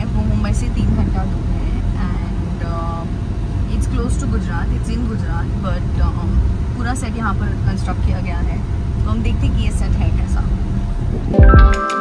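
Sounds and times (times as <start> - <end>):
woman talking: 0.0 - 10.7
car cabin road rumble: 0.0 - 11.7.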